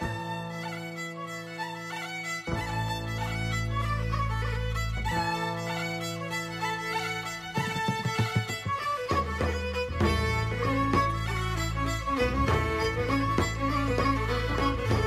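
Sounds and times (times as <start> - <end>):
fiddle playing quick tune: 0.0 - 15.0.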